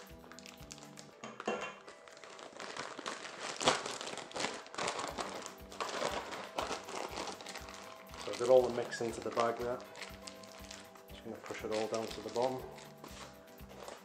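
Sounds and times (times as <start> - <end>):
plastic piping bag crinkling: 0.0 - 14.0
soft background music: 0.0 - 14.0.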